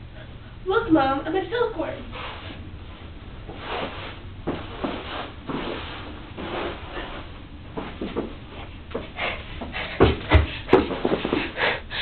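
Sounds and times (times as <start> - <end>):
person shuffling and rustling: 2.1 - 11.7.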